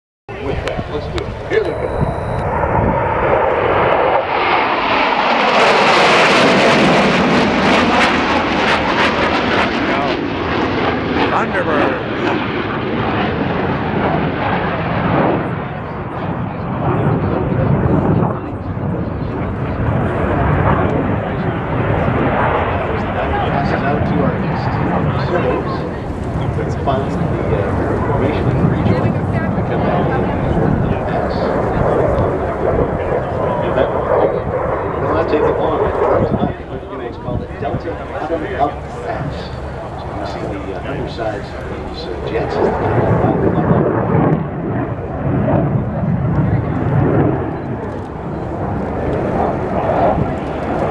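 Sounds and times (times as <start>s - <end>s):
jets flying over: 0.3s - 50.9s
low steady jet rumble: 0.3s - 50.9s.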